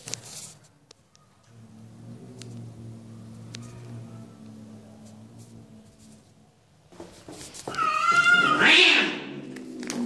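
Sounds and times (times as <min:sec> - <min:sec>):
cat yowling: 0:07.7 - 0:09.4.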